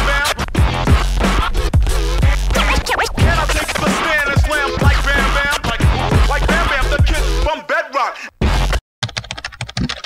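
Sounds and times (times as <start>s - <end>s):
hip-hop music: 0.0s - 8.8s
computer keyboard typing: 9.0s - 10.0s.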